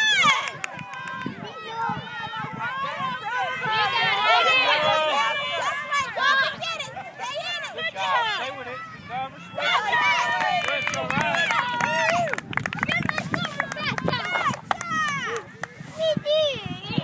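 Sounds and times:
children and adults shouting: 0:00.0 - 0:12.3.

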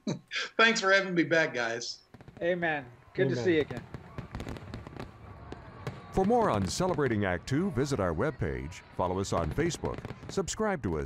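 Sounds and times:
fireworks crackling pops: 0:02.1 - 0:07.9, 0:08.8 - 0:11.0.

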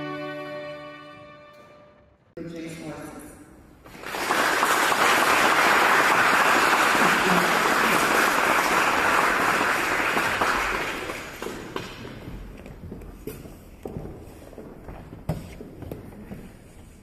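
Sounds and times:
audience applause: 0:03.9 - 0:12.0.

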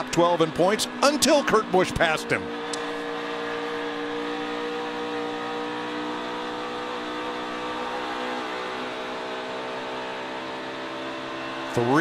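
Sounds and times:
race car engine at speed: 0:00.0 - 0:12.0.

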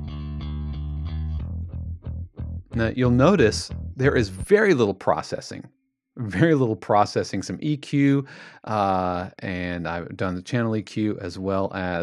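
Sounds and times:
clean bass guitar line: 0:00.0 - 0:05.2, 0:06.2 - 0:06.8.

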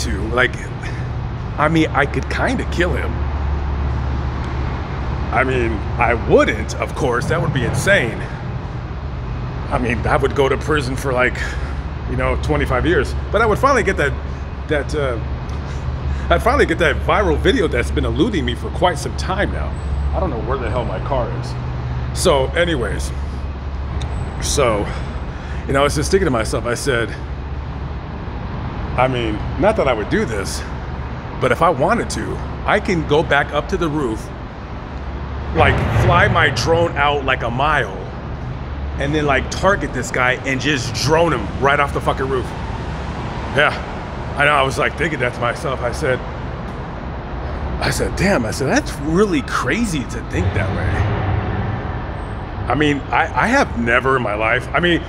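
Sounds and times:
even noise haze: 0:00.0 - 0:55.0
steady low rumble: 0:00.0 - 0:55.0.

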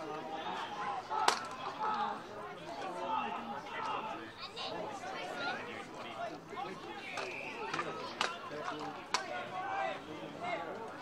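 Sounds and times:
overlapping voices calling out: 0:00.0 - 0:11.0.

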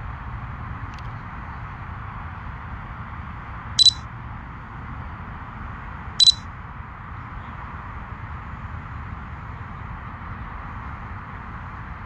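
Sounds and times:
high electronic beeps: 0:03.8 - 0:04.0, 0:06.2 - 0:06.4.

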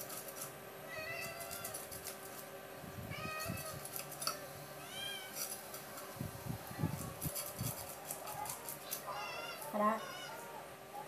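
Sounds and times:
cat meowing: 0:03.1 - 0:03.8, 0:08.3 - 0:10.6.

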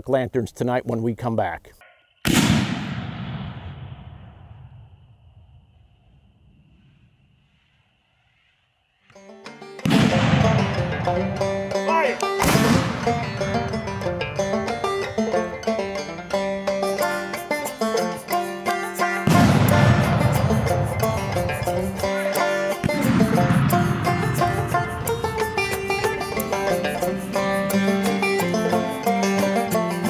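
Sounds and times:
mortar shot boom: 0:02.3 - 0:04.8, 0:09.8 - 0:11.5, 0:12.4 - 0:13.8, 0:19.3 - 0:22.0, 0:22.8 - 0:25.8
banjo and mandolin music: 0:09.2 - 0:30.0
heavy hits: 0:19.3 - 0:29.5.

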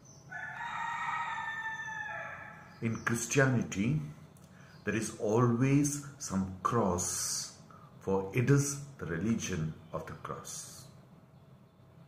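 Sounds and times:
rooster crowing: 0:00.3 - 0:02.8.

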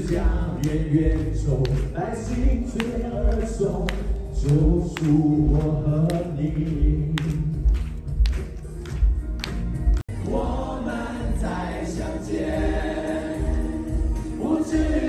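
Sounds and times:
man singing ballad into microphone: 0:00.0 - 0:07.8
scattered handclaps: 0:00.0 - 0:10.1
backing track: 0:00.0 - 0:15.0.

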